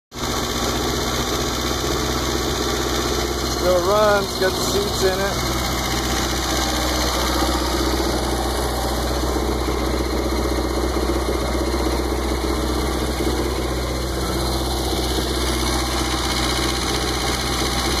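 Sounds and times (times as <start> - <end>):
boat engine idling: 0.1 - 18.0.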